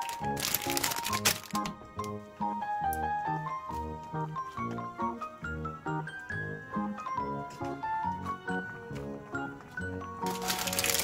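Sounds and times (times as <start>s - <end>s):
dry noodles crackling in pan: 0.0s - 1.8s, 10.2s - 11.0s
background music: 0.0s - 11.0s.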